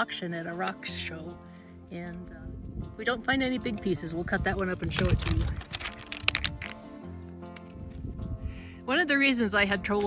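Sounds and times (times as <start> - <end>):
background music: 0.0 - 10.0
rocks knocking together: 4.7 - 6.8.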